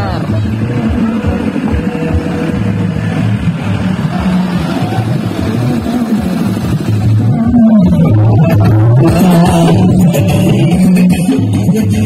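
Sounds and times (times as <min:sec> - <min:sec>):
dance music over loudspeakers: 0:00.0 - 0:12.0.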